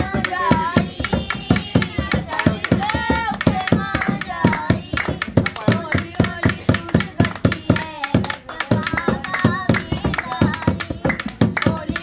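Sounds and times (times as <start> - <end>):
hand claps: 0.0 - 12.0
hand drum in steady rhythm: 0.0 - 12.0.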